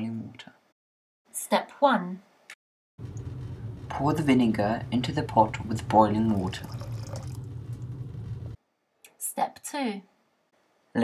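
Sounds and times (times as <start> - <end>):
steady low hum: 3.0 - 8.6
liquid pouring into a pot: 6.0 - 8.2.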